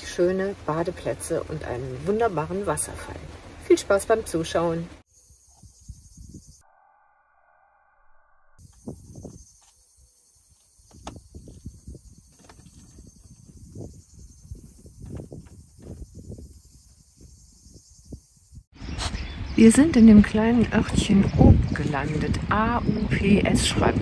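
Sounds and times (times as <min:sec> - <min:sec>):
cicadas chirping: 0:05.0 - 0:06.9, 0:08.6 - 0:20.5
wind gusts on microphone: 0:05.5 - 0:06.6, 0:08.6 - 0:09.6, 0:10.9 - 0:24.0.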